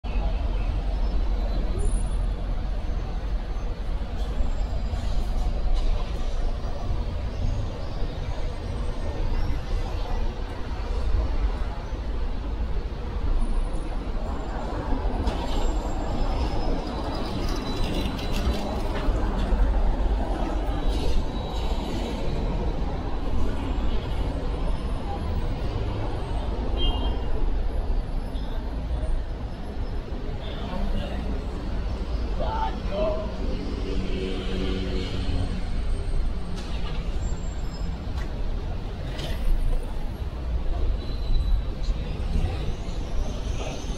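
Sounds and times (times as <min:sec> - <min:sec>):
city street traffic rumble: 0:00.0 - 0:43.9
passers-by talking: 0:00.1 - 0:37.2.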